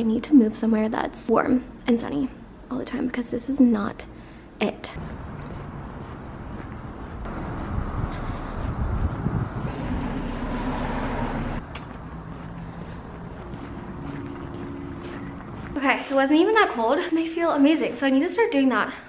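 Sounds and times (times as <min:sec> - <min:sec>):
road traffic: 0:04.4 - 0:17.2
wind rumbling on microphone: 0:05.0 - 0:15.8.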